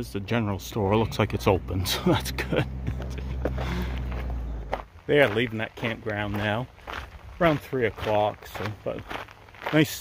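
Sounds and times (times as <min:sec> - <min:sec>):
footsteps walking: 0:02.6 - 0:10.0.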